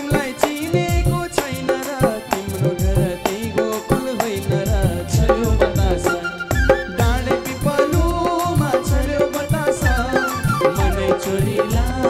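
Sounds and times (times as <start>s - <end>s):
harmonium: 0.0s - 12.0s
man singing: 0.0s - 12.0s.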